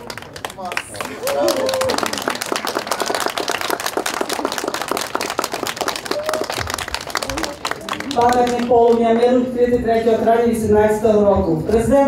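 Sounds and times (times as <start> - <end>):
crowd applauding: 0.0 - 9.3.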